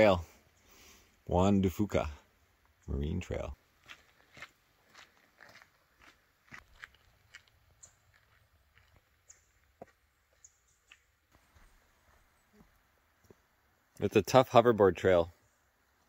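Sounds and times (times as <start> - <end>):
footsteps on gravel: 3.7 - 13.4.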